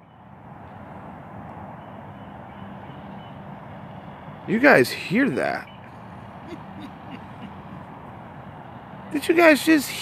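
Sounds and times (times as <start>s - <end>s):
distant traffic rumble: 0.0s - 10.0s.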